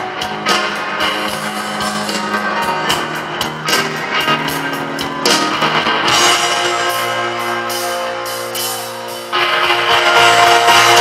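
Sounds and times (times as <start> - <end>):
picked guitar notes: 0.0 - 11.0
rock band playing slow blues: 0.0 - 11.0.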